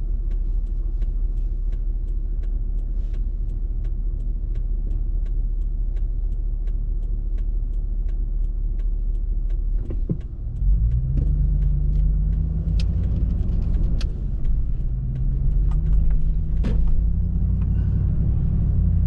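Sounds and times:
car engine: 0.0s - 19.0s
turn signal ticking: 0.0s - 19.0s.

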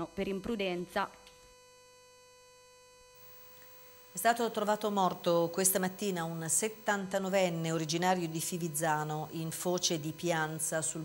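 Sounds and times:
faint electrical hum: 0.0s - 11.0s
person speaking: 4.1s - 11.0s.

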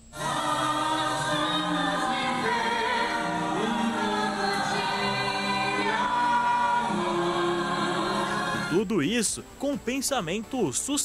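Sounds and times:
choir singing with accompaniment: 0.0s - 9.0s.

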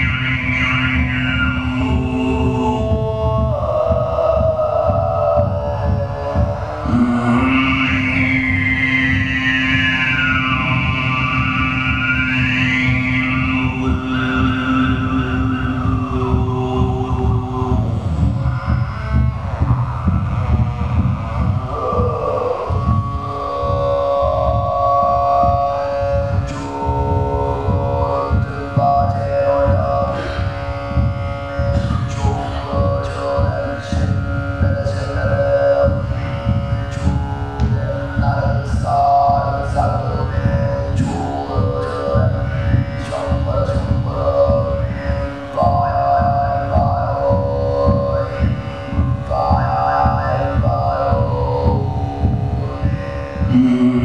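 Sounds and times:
amplified heartbeat: 0.0s - 54.0s
throat singing drone: 0.0s - 54.0s.

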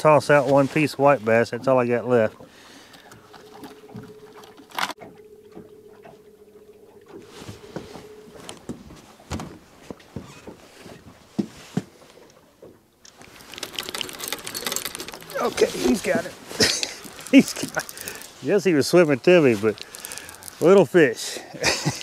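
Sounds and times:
fishing gear clicks and knocks: 2.2s - 6.2s, 13.0s - 20.9s, 21.6s - 22.0s
faint steady hum: 2.5s - 10.2s.

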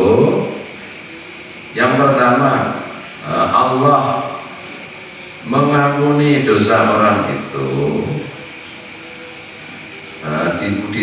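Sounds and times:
steady background noise: 0.0s - 11.0s
man speaking: 5.5s - 8.3s, 10.2s - 11.0s.

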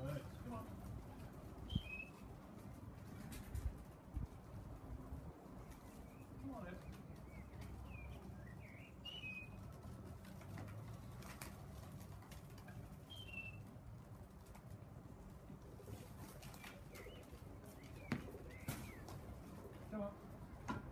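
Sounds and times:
high bird chirps: 1.7s - 2.2s, 7.0s - 9.6s, 13.1s - 13.6s.

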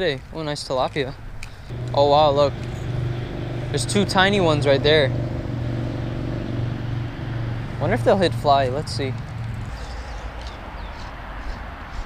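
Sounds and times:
road traffic drone: 1.2s - 12.0s.

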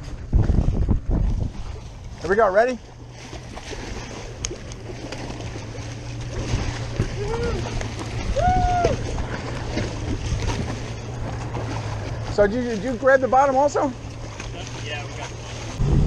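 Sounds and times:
outboard motor idling: 0.0s - 16.0s
water sloshing against hull: 0.0s - 16.0s
wind: 0.0s - 16.0s.

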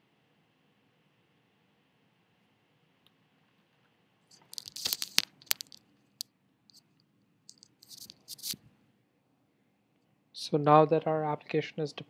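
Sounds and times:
irregular crackles and sharp clicks: 3.0s - 8.6s.

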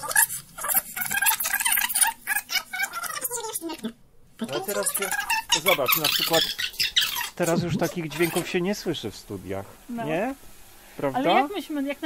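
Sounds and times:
tape rewinding chattering warble: 0.0s - 9.0s.

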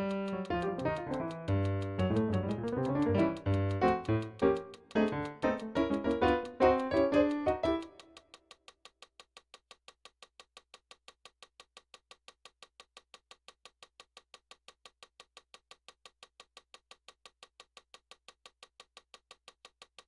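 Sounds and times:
faint steady ticking: 0.0s - 20.0s.

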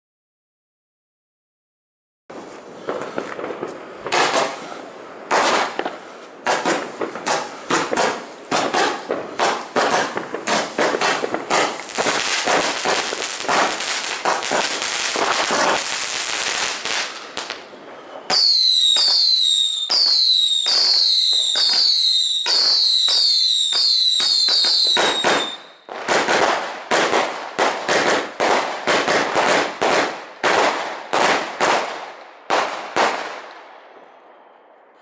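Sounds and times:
firework battery shots: 2.8s - 27.2s
falling firework whistles: 6.5s - 25.9s.

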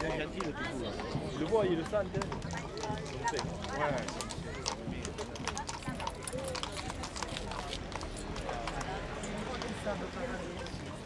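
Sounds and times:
chatter of voices: 0.0s - 11.0s
hooves clip-clopping on pavement: 0.0s - 11.0s.

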